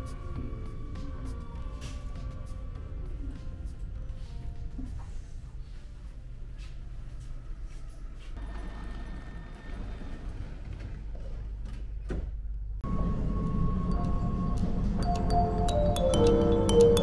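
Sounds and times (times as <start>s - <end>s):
background music: 0.0s - 6.3s, 12.8s - 17.0s
train low steady rumble: 12.6s - 15.9s
thin steady door warning tone: 12.8s - 15.6s.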